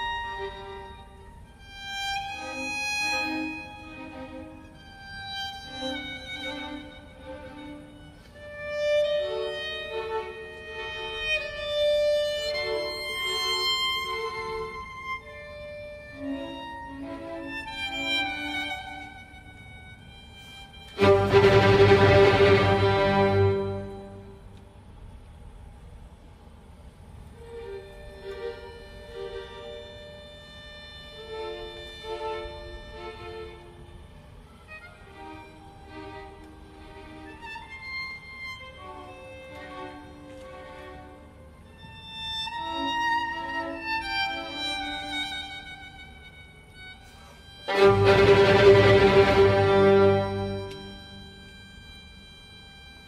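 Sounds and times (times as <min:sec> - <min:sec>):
solo violin: 0:00.0 - 0:25.2, 0:27.2 - 0:53.0
string orchestra: 0:00.0 - 0:53.0.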